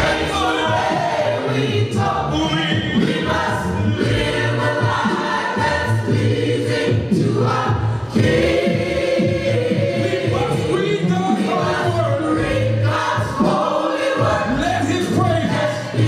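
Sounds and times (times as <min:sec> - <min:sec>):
gospel choir singing a cappella: 0:00.0 - 0:16.0.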